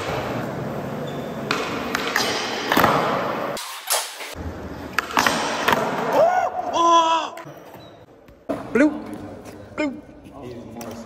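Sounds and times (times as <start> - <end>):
person shouting: 6.2 - 7.4.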